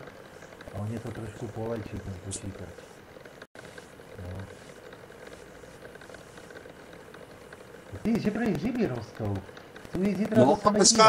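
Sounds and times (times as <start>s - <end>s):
computer cooling fan hum: 0.0s - 11.0s.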